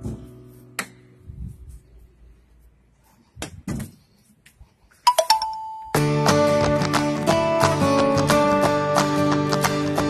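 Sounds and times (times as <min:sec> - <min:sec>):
bell-like chime notes: 0:05.1 - 0:06.1.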